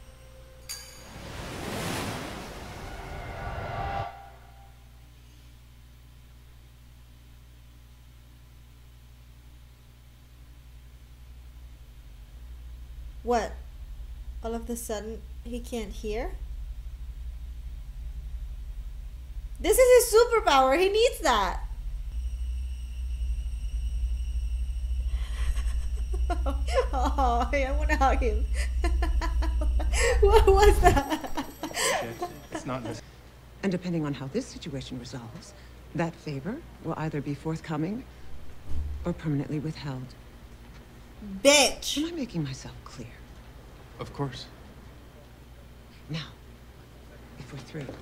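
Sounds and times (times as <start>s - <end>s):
rushing hiss with ringing tones: 0.0s - 4.8s, 11.3s - 33.2s
low hum: 0.0s - 48.0s
low steady rumble: 0.0s - 48.0s.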